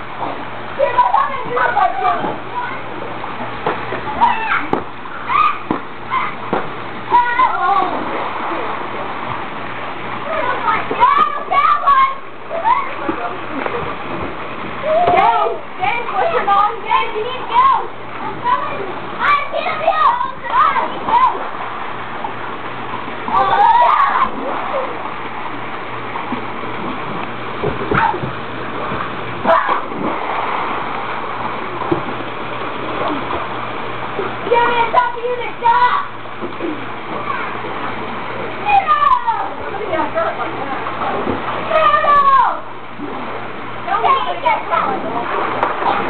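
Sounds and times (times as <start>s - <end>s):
water splashing in pool: 0.0s - 46.0s
children calling and shouting: 0.7s - 3.2s, 4.0s - 8.7s, 10.2s - 14.0s, 14.7s - 21.7s, 23.2s - 25.0s, 29.4s - 29.9s, 34.2s - 45.4s.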